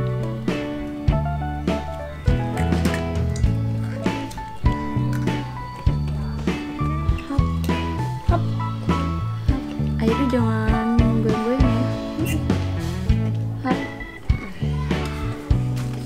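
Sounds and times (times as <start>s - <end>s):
instrumental music with beat and bass: 0.0s - 16.0s.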